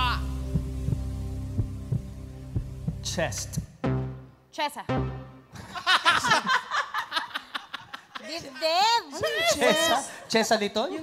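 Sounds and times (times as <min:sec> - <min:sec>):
heartbeat-like double thump: 0:00.5 - 0:04.2.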